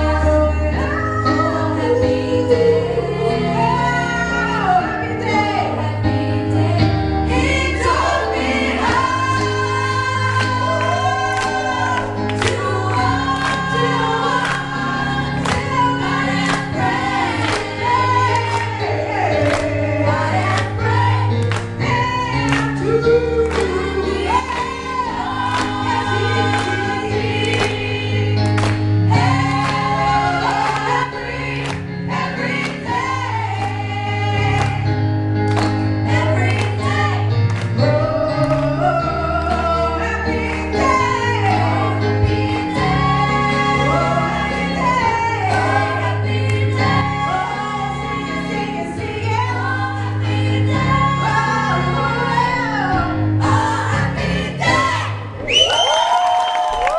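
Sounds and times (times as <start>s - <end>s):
women singing gospel: 0.0s - 55.8s.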